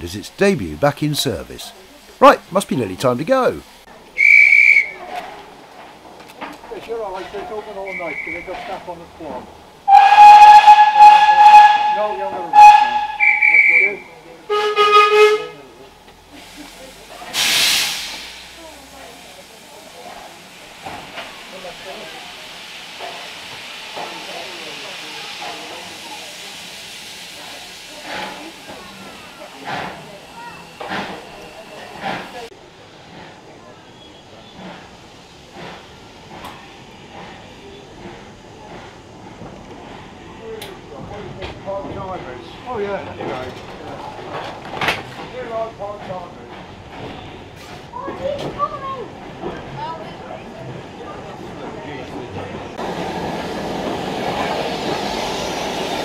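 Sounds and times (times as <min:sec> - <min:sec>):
shrill whistle: 0:04.2 - 0:05.0, 0:07.8 - 0:08.5, 0:12.6 - 0:14.0
steam locomotive whistle blast: 0:04.2 - 0:05.0, 0:07.9 - 0:08.5, 0:09.9 - 0:15.6
steam hissing: 0:16.2 - 0:40.2, 0:52.7 - 0:56.0.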